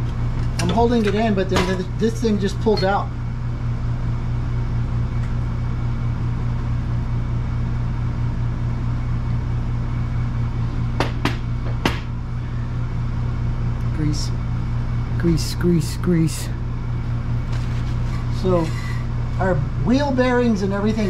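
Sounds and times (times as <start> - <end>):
low mechanical hum: 0.0 - 21.0.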